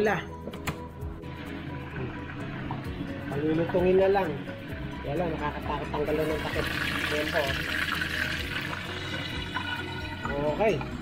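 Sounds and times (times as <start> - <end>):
meat sizzling in oil: 6.1 - 10.2.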